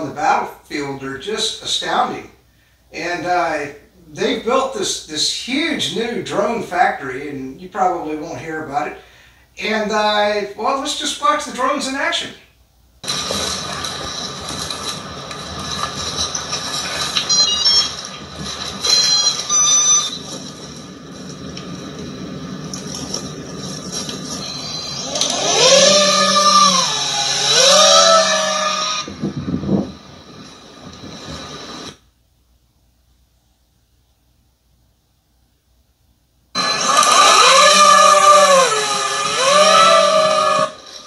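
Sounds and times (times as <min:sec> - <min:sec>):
steady hiss with high whine: 0:00.0 - 0:41.0
loud pitched sound rising and falling: 0:21.8 - 0:31.9, 0:36.6 - 0:41.0.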